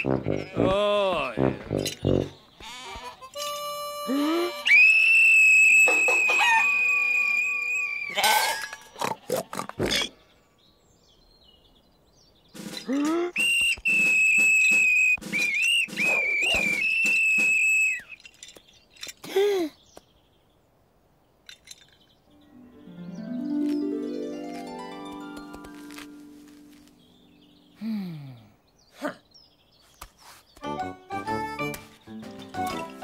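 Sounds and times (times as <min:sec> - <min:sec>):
metal whistle blasts: 0:04.7 - 0:08.1, 0:13.4 - 0:18.2.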